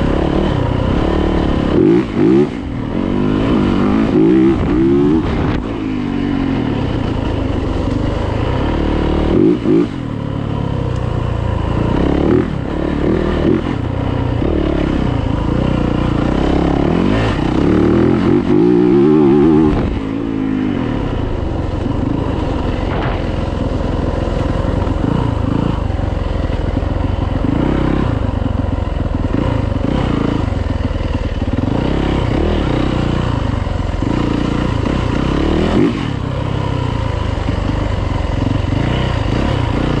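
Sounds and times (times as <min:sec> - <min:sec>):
motorcycle engine revving: 0:00.0 - 0:40.0.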